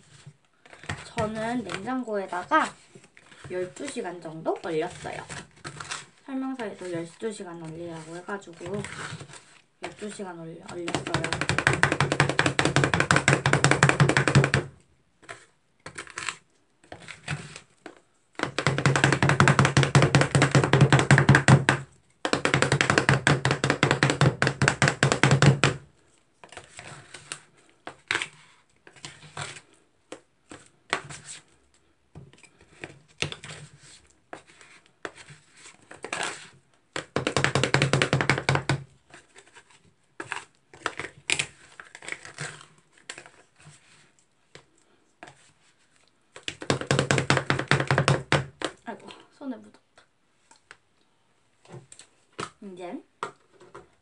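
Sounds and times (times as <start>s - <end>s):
spatulas chopping on metal plate: 9.8s - 14.7s, 18.4s - 25.8s.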